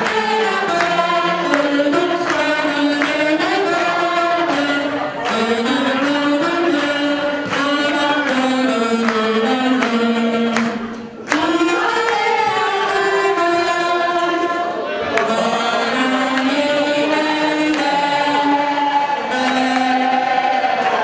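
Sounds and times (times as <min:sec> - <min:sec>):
hands clapping along: 0:00.0 - 0:13.8, 0:15.1 - 0:21.0
people singing slow melody: 0:00.0 - 0:21.0.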